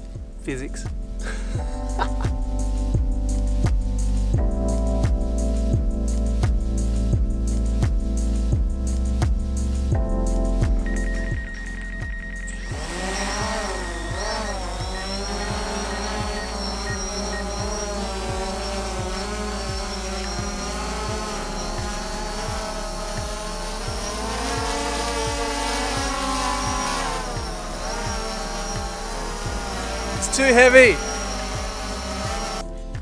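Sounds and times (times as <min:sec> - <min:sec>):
background music with steady beat: 0:00.0 - 0:33.0
drone propellers whining: 0:10.9 - 0:32.7.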